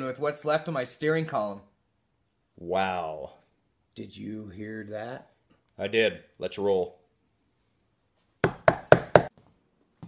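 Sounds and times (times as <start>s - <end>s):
knocking on a door: 8.4s - 9.3s.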